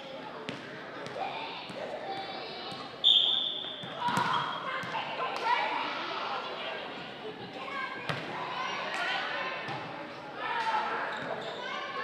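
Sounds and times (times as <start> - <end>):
crowd chatter: 0.0 - 12.0
referee's whistle blast: 3.0 - 3.6
volleyball bouncing on floor: 3.8 - 5.0.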